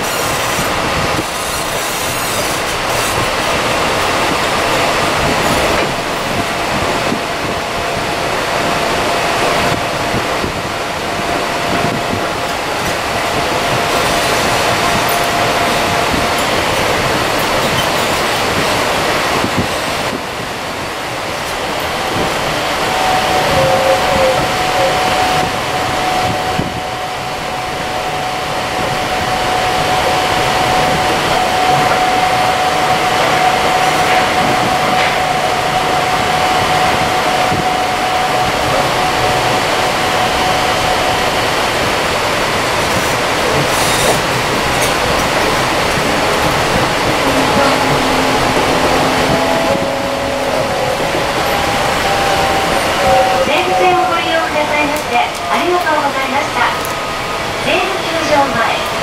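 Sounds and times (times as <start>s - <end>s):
train car interior running noise: 0.0s - 59.0s
shifting tones: 19.4s - 43.6s, 44.4s - 59.0s
steady whine: 21.1s - 42.8s, 44.5s - 59.0s.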